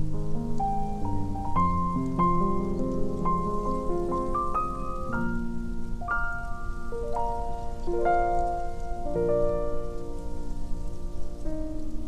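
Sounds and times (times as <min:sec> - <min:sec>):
soft solo piano chords: 0:00.0 - 0:12.0
steady crackling noise: 0:00.0 - 0:12.0.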